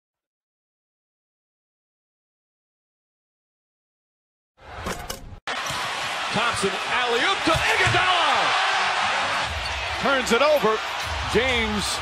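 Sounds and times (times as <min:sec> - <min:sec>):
crowd noise: 0:04.6 - 0:12.0
ball bouncing on court: 0:07.5 - 0:08.1.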